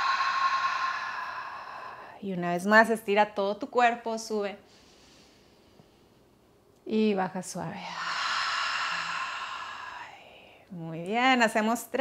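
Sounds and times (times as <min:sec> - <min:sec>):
woman exhaling slowly: 0:00.0 - 0:02.2, 0:07.8 - 0:10.6.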